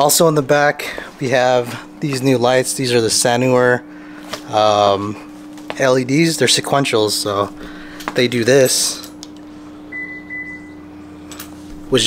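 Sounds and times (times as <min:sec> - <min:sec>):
steady low hum: 0:00.0 - 0:12.0
short electronic beep: 0:09.9 - 0:10.8.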